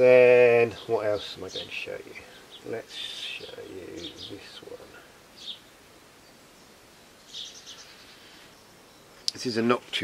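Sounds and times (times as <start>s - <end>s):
faint background hiss: 0.0s - 10.0s
bird chirping: 0.6s - 10.0s.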